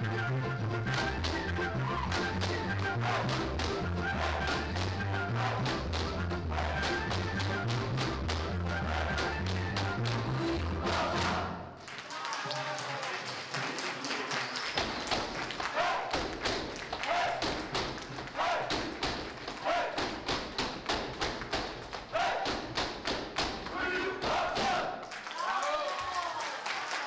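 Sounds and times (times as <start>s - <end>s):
backing music: 0.0s - 11.7s
people shouting calls: 15.7s - 16.2s, 17.0s - 17.5s, 18.4s - 18.8s, 19.6s - 20.0s, 22.1s - 22.5s, 23.7s - 25.9s.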